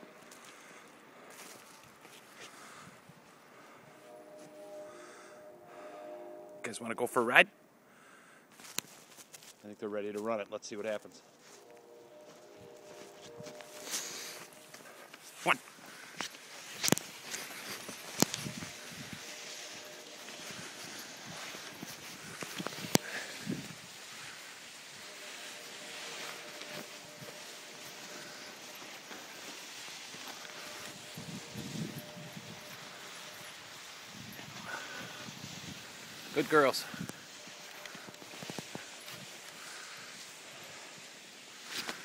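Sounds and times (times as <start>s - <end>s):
sled runners hissing on snow: 0.0s - 6.7s, 10.7s - 42.0s.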